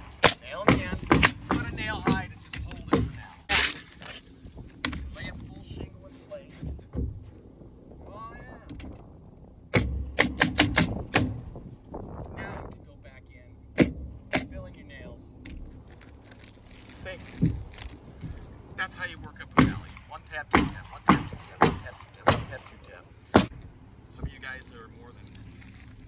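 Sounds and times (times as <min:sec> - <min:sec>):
nail gun firing: 0:00.2 - 0:01.6, 0:09.7 - 0:11.4, 0:13.8 - 0:14.5, 0:20.6 - 0:23.5.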